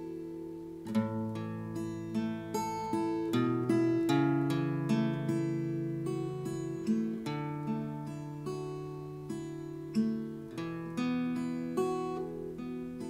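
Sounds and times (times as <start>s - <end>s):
fingerpicked acoustic guitar: 0.0s - 13.0s.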